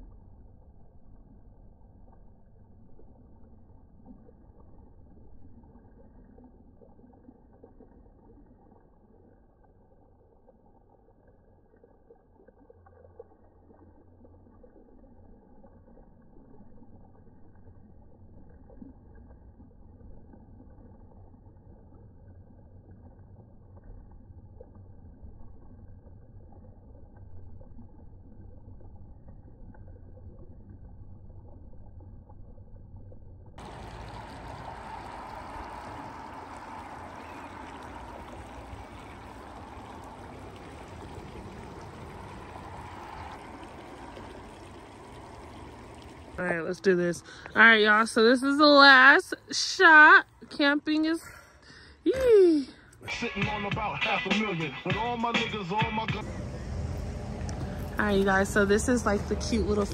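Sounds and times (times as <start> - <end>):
creek trickling over gravel: 33.6 - 50.7, 52.8 - 59.9.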